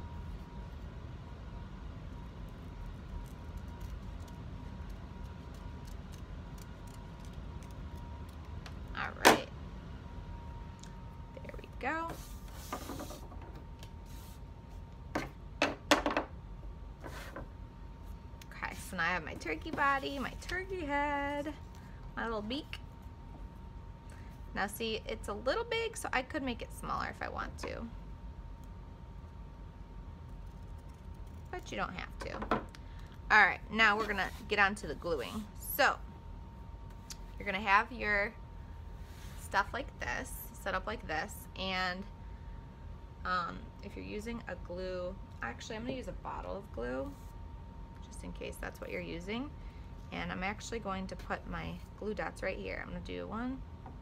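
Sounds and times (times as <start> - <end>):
furnace humming: 0.0 - 54.0.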